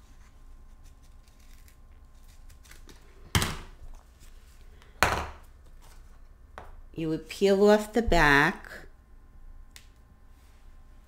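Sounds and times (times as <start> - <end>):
scissors and foam handling: 0.7 - 3.1.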